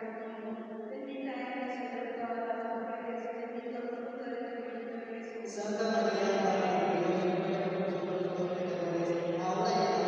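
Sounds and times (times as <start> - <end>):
voices chanting prayer: 5.4 - 10.0.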